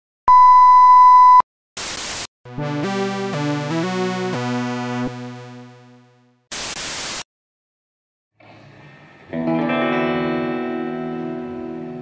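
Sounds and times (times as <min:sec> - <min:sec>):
static hiss: 0:01.8 - 0:02.3, 0:06.5 - 0:07.2.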